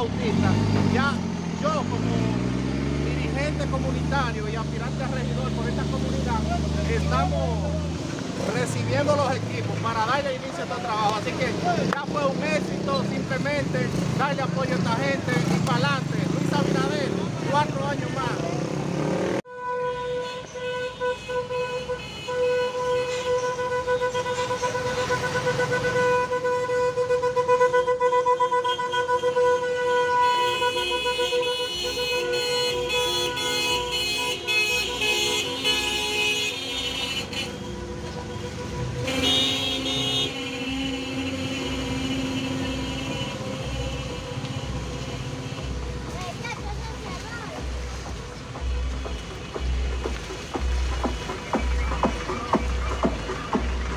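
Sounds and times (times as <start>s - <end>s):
vehicle horns sounding: 19.0s - 53.9s.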